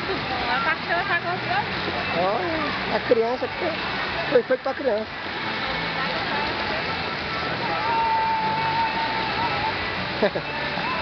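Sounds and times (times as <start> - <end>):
water jets spraying and splashing: 0.0 - 11.0.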